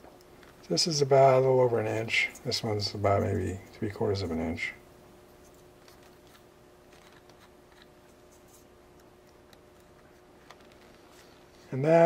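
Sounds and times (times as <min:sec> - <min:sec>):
faint steady hum: 0:00.0 - 0:12.0
fingers handling tubing and wire: 0:05.3 - 0:11.8.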